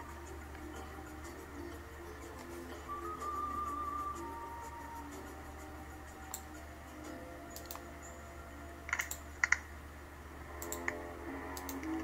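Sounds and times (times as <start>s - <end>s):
faint background music: 0.0s - 12.0s
sharp clicks: 7.6s - 7.8s, 8.9s - 9.7s, 10.6s - 11.0s.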